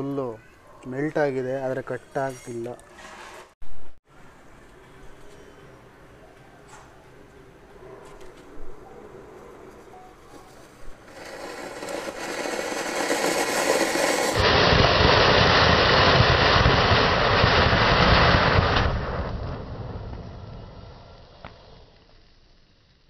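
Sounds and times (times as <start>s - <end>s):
firework fountain hissing: 11.0s - 23.0s.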